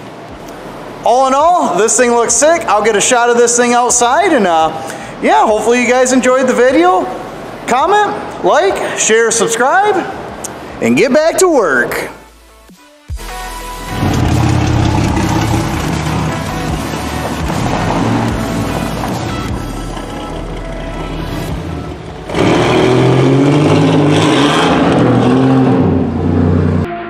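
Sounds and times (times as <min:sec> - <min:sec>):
background music: 0:00.0 - 0:27.0
car engine revving: 0:13.9 - 0:27.0.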